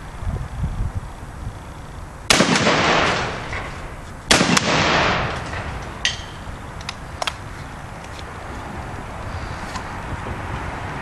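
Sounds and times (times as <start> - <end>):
shotgun shots with echo: 2.3 - 6.4.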